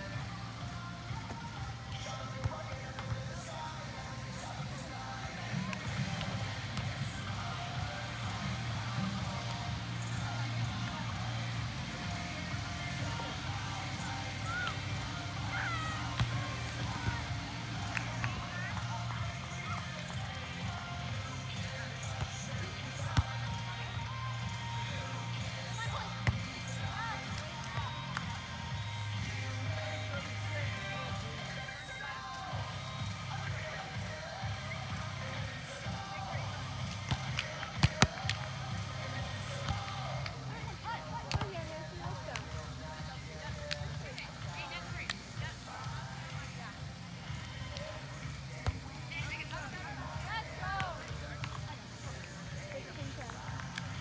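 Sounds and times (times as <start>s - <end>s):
background music: 0.0s - 54.0s
people talking: 12.1s - 54.0s.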